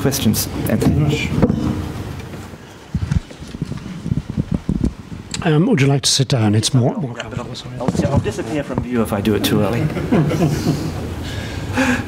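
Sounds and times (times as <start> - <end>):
microphone handling knocks: 7.8 - 8.9.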